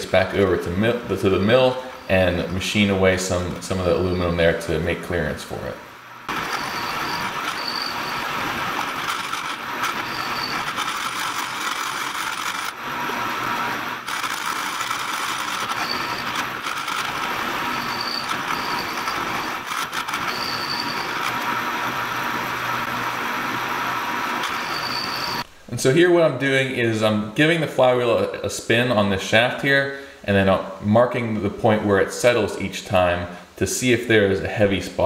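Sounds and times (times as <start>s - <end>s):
milling machine cutting metal: 6.3s - 25.4s.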